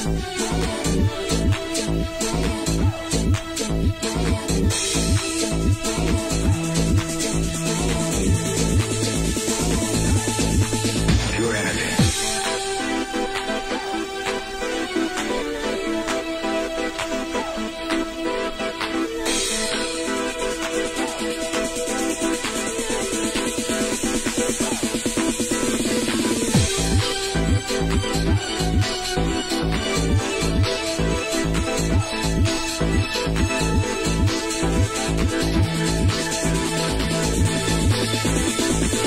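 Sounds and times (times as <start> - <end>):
steady kick drum: 0.0 - 12.8, 19.4 - 39.0
house music with dance beat: 0.0 - 39.0
synth chords: 0.0 - 39.0.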